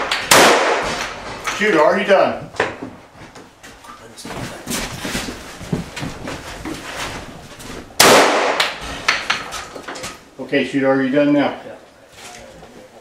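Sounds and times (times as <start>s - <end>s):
gunshot echoing indoors: 0.0s - 1.4s, 8.0s - 9.0s
knocks and clatter of movement: 8.8s - 10.2s.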